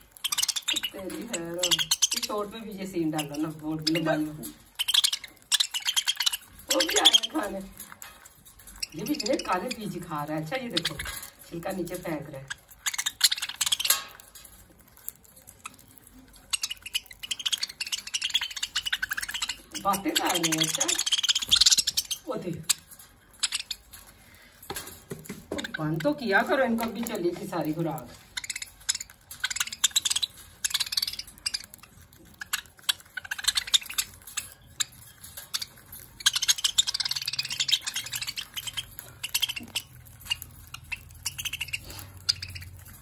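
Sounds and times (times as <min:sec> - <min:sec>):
budgerigars chirping: 0:00.0 - 0:07.8, 0:08.4 - 0:14.2, 0:15.2 - 0:24.4, 0:25.5 - 0:43.0
birds pecking and cracking seed: 0:00.0 - 0:43.0.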